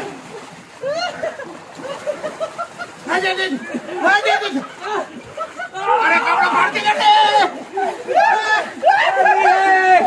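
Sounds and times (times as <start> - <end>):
pool water splashing: 0.0 - 10.0.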